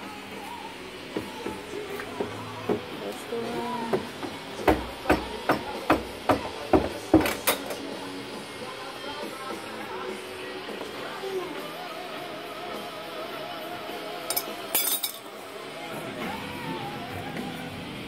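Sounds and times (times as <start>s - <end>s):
background music with singing: 0.0s - 18.0s
metal tool clinks: 14.3s - 15.3s.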